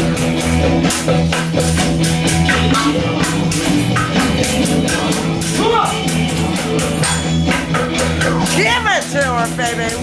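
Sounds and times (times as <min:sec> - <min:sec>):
accompanying music: 0:00.0 - 0:10.0
person's voice: 0:08.5 - 0:10.0.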